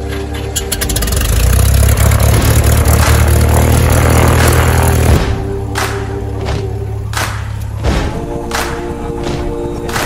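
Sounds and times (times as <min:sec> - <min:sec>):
aircraft piston engine drone: 0:00.0 - 0:07.8.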